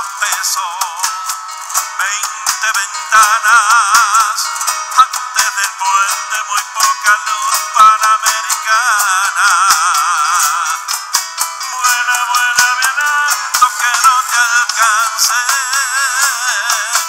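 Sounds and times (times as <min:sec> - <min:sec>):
percussion hits: 0:00.0 - 0:17.0
strummed acoustic guitar: 0:00.0 - 0:17.0.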